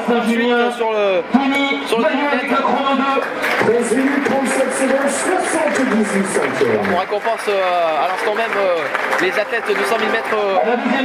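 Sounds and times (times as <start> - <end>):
man talking over public address: 0.0 - 11.0.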